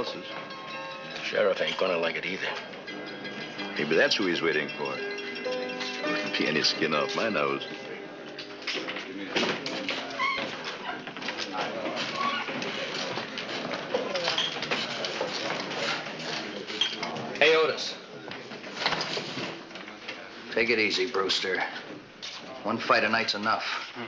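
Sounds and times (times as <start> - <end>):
murmur of many voices: 0.0 - 24.0.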